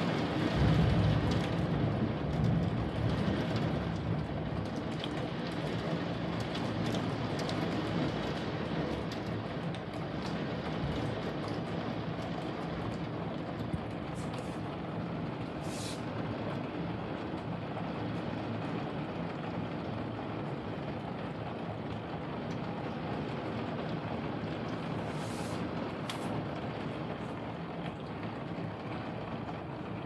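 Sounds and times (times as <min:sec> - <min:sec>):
heavy rain through a window: 0:00.0 - 0:30.0.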